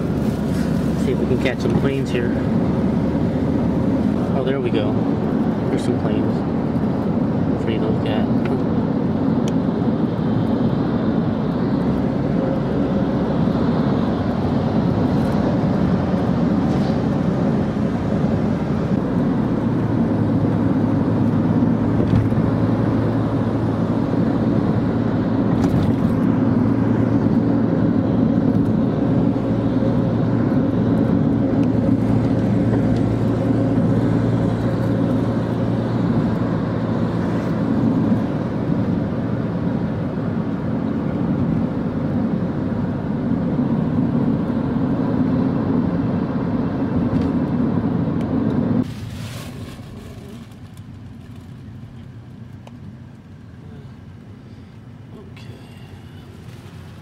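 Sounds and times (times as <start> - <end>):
car engine and road noise: 0.0 - 57.0.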